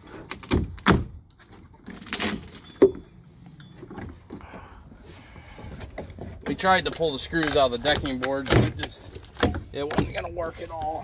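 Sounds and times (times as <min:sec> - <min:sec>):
wood splitting crack: 0:00.2 - 0:01.2, 0:01.8 - 0:02.7, 0:06.8 - 0:10.2.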